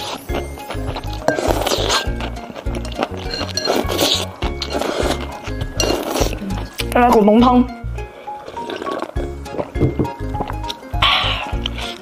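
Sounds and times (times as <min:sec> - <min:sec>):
person slurping soup: 0:00.0 - 0:06.7, 0:08.0 - 0:10.2, 0:11.0 - 0:12.0
background music with steady beat: 0:00.0 - 0:12.0.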